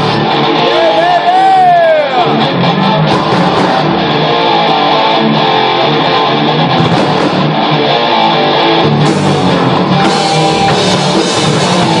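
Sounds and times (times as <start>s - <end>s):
electric guitar: 0.0s - 12.0s
rock band playing: 0.0s - 12.0s.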